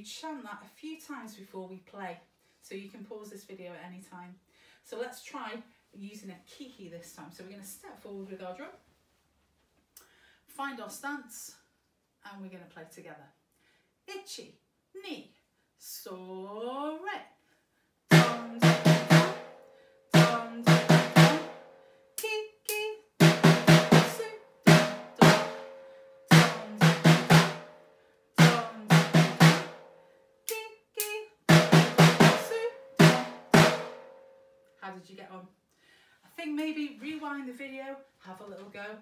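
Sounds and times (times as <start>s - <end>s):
snare drum rhythm: 18.1s - 21.6s, 22.7s - 27.8s, 28.4s - 29.9s, 30.5s - 34.2s.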